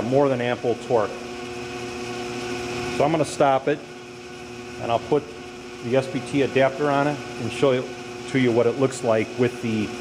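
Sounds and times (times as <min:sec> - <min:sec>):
woodworking machine humming: 0:00.0 - 0:10.0.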